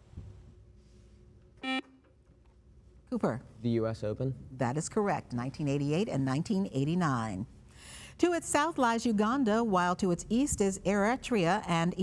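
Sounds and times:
short electronic buzzer: 1.6 - 1.9.

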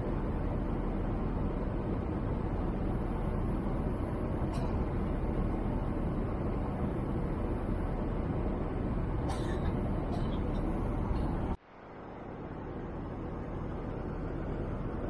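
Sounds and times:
airplane cabin noise: 0.0 - 15.0.

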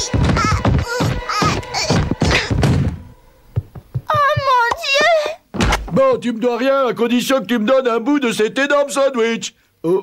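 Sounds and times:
heavy thud: 0.0 - 4.6
body tumbling down wooden stairs: 0.0 - 6.0.

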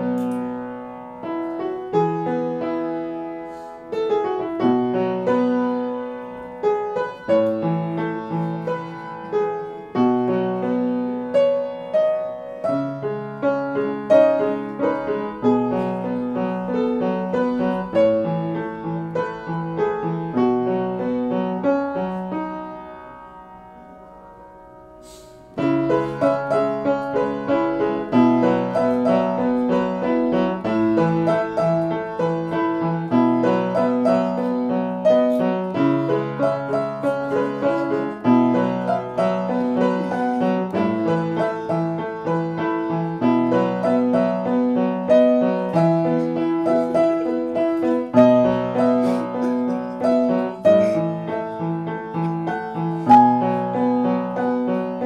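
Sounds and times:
piano chords over bass notes: 0.0 - 55.0.

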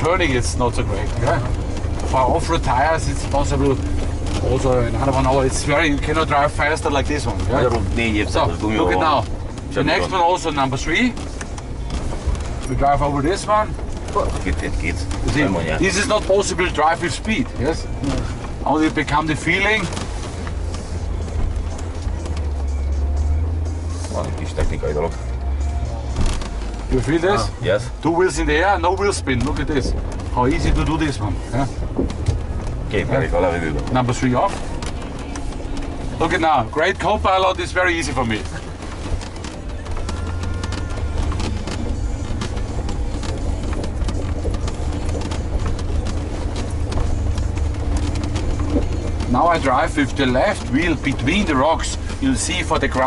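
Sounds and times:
engine droning at low revs: 0.0 - 53.0
suspension jolting: 0.0 - 53.0
stones knocking under tyres: 26.0 - 53.0.

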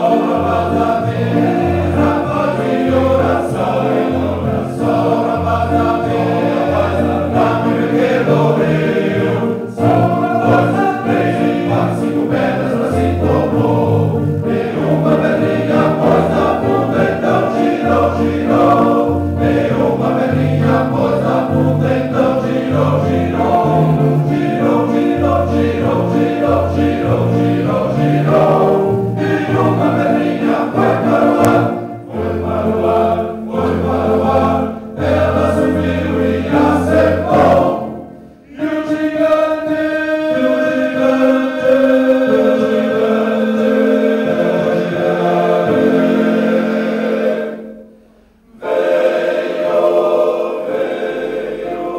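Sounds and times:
men's choir singing a hymn: 0.0 - 51.9.

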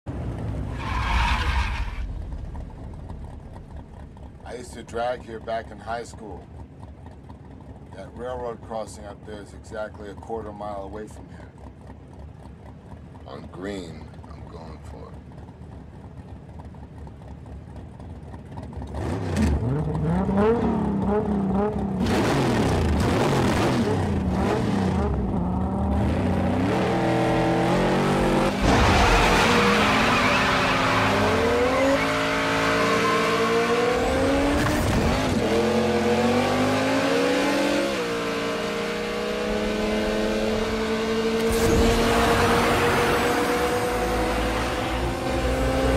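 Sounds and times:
car engine rumbling: 0.1 - 45.9
tyres screeching: 0.7 - 2.2, 28.3 - 34.8.

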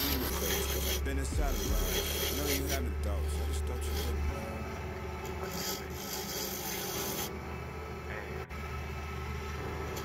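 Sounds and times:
turning tool scraping wood: 0.0 - 4.6, 5.2 - 7.4
wood lathe humming: 0.0 - 10.0.

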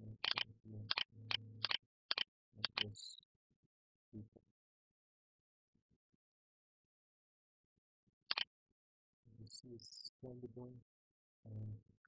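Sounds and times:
computer mouse double click: 1.6 - 2.8.

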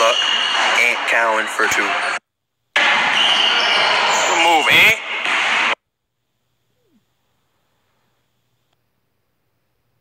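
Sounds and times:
basketball game play and voices: 0.0 - 5.8.

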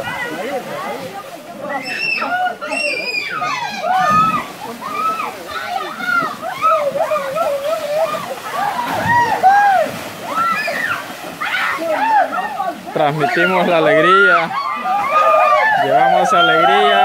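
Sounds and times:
water splashing and sloshing: 0.0 - 17.0
people shouting and whooping: 1.6 - 17.0.

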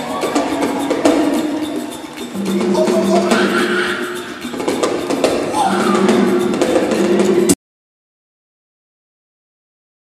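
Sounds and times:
metal band playing live: 2.3 - 7.5.

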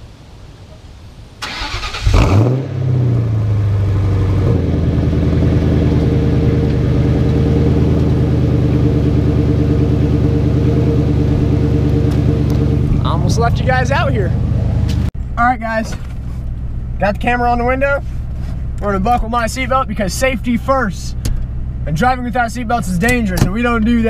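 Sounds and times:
car engine revving and idling: 1.5 - 15.4, 16.0 - 24.0.

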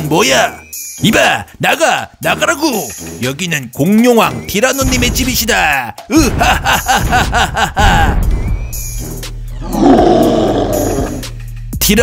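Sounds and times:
background music: 0.0 - 12.0
dinosaur roar: 9.6 - 11.3.

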